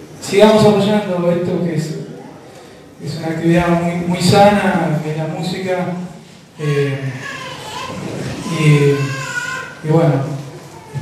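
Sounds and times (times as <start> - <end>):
children's voices and chatter: 1.8 - 3.1, 4.9 - 11.0.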